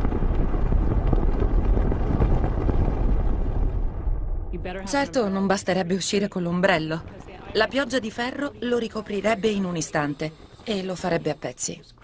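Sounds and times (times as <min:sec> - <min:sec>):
storm wind rush with deep rumble: 0:00.0 - 0:05.6, 0:06.3 - 0:11.5.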